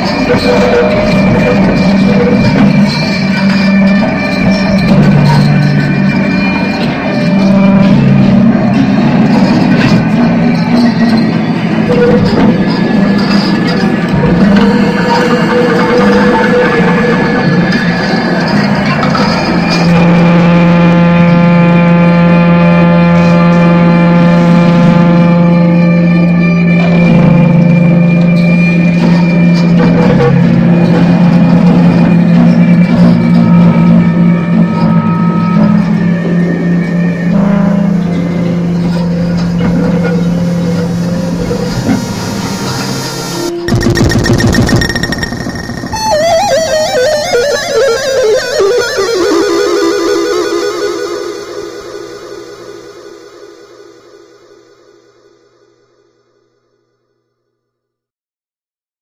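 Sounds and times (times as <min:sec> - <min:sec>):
churning electronic noise: 0:00.0 - 0:54.2
loud low drone: 0:00.0 - 0:54.8.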